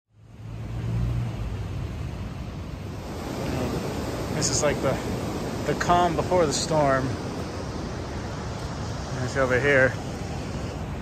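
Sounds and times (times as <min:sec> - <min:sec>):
surf washing: 0:00.3 - 0:11.0
wind rumble on microphone: 0:00.4 - 0:11.0.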